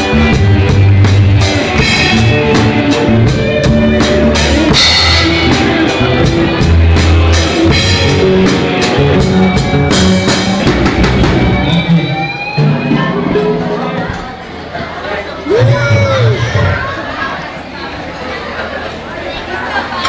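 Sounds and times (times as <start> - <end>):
live rock band playing: 0.0 - 17.3.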